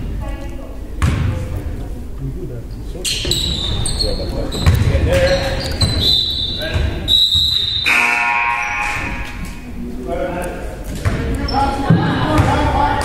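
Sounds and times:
sneakers squeaking: 3.0s - 9.8s, 10.8s - 12.8s
basketball bouncing on hardwood: 4.6s - 6.0s.

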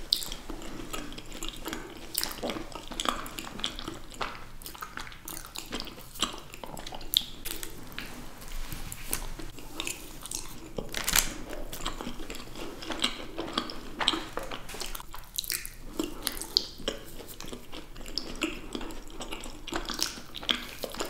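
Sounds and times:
chewing and biting: 0.0s - 8.2s, 8.9s - 21.0s.

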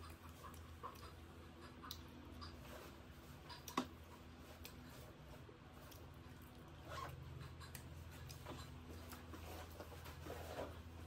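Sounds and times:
chewing and mouth clicks: 0.0s - 2.7s, 3.3s - 9.8s
fingers mixing wet rice: 0.0s - 11.0s
low steady hum: 0.0s - 11.0s.

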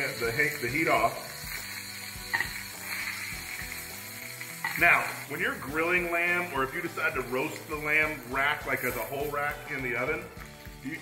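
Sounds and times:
metal tongs clinking on skillet: 0.0s - 9.4s
quiet background music: 0.0s - 11.0s.

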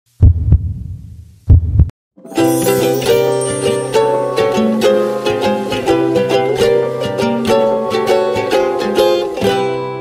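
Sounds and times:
heartbeat thumps: 0.2s - 1.9s.

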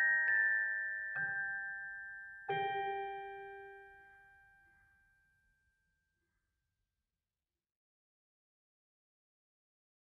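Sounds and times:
bell-like lullaby chord: 0.0s - 6.1s.

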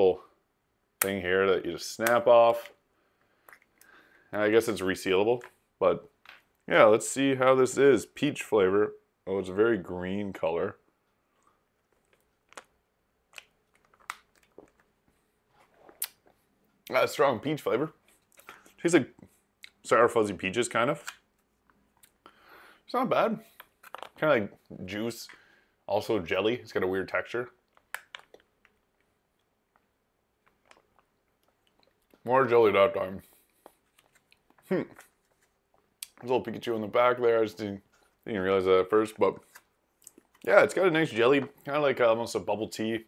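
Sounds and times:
wet mouth sucking and chewing: 3.4s - 3.9s, 11.3s - 16.5s.

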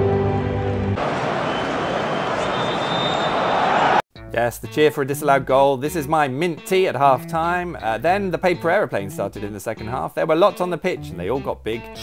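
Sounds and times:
music with sustained notes: 0.0s - 1.0s
stadium crowd cheering: 0.0s - 4.0s.

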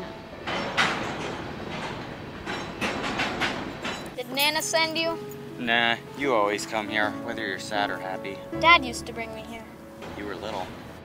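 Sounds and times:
wheels clattering over rail joints: 0.0s - 5.5s, 10.0s - 11.0s
freight train cars rolling: 0.0s - 9.2s, 9.9s - 11.0s.

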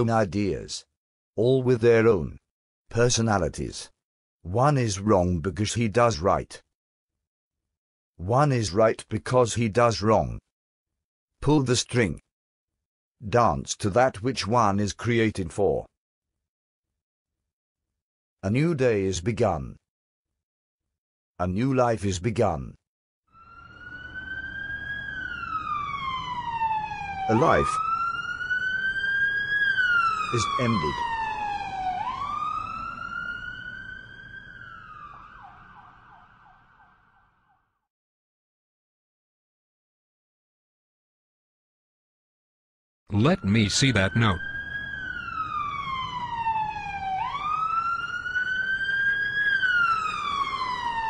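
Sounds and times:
siren wailing: 23.4s - 37.6s, 43.1s - 51.0s.

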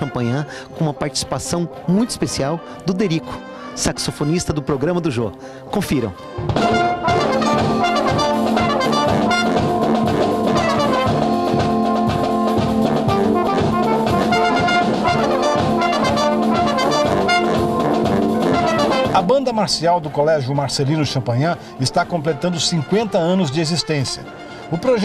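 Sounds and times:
brass chords: 0.0s - 0.5s, 6.0s - 20.0s, 22.0s - 25.0s
steady drum beat: 6.4s - 19.6s.

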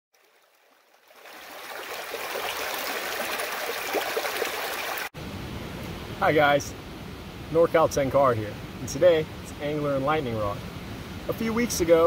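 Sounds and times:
creek rushing over rocks: 0.2s - 5.1s
background hiss: 4.9s - 12.0s.

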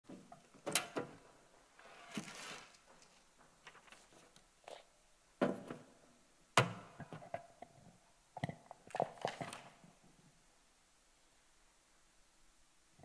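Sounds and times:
paper rustling: 1.9s - 4.4s.

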